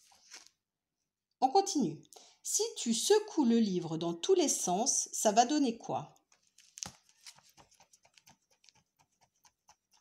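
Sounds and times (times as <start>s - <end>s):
picture book pages knocking: 6.4s - 10.0s.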